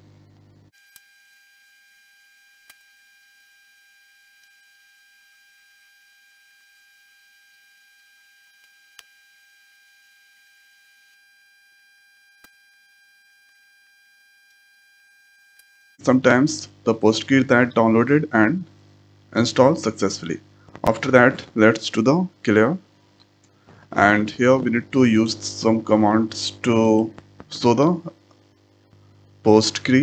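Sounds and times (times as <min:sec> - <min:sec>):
faint electrical whine: 0:00.0 - 0:30.0.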